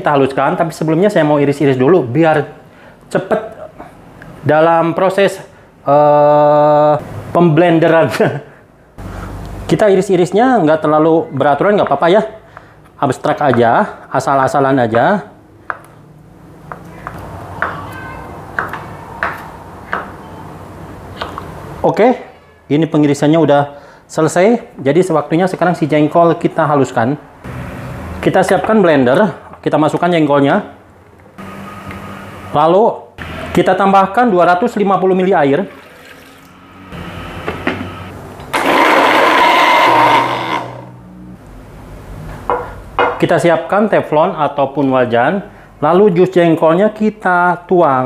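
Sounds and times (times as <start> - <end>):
electric blender running: 38.5 - 40.9.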